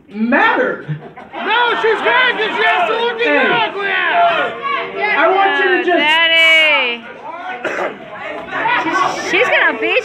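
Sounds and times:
people talking in a hall: 0:00.0 - 0:10.0.

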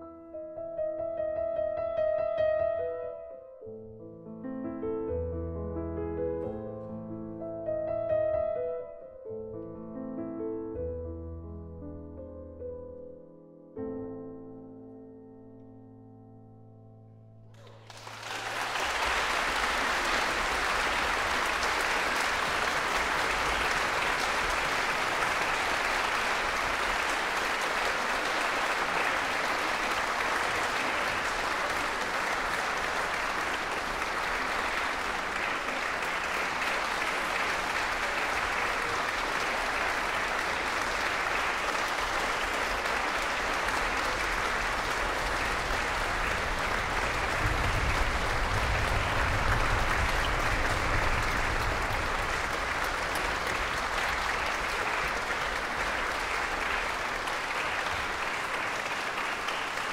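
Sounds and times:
audience applauding: 0:17.5 - 0:59.9.

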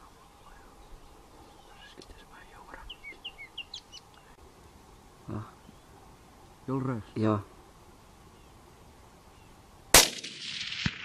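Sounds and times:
rifle shot: 0:09.9 - 0:11.0.

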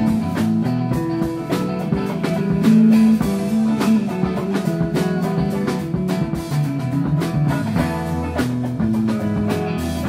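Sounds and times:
drum kit hits: 0:00.0 - 0:10.0
electric guitar: 0:00.0 - 0:10.0.

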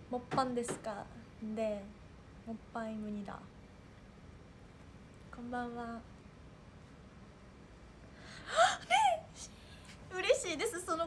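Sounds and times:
woman gasping: 0:08.2 - 0:10.0
woman laughing: 0:08.5 - 0:09.2.

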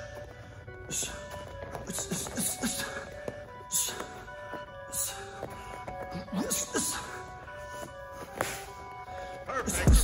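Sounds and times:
background music with held tones: 0:00.0 - 0:10.0.

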